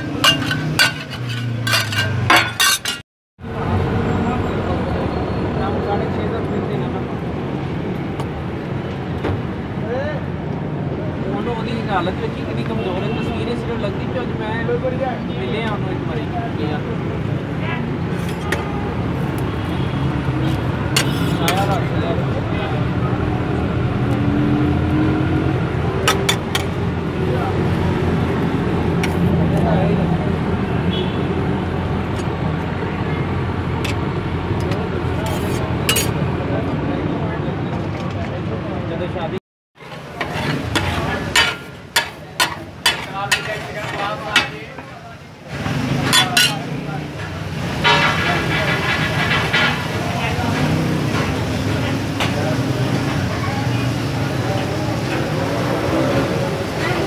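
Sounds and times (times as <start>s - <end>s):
low street rumble: 0.0s - 57.0s
road traffic: 0.0s - 57.0s
vehicle horn: 30.9s - 31.3s.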